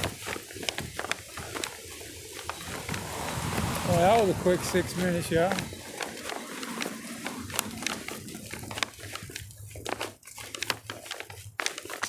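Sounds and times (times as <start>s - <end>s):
rustling: 0.0s - 12.0s
crackling clicks: 5.1s - 12.0s.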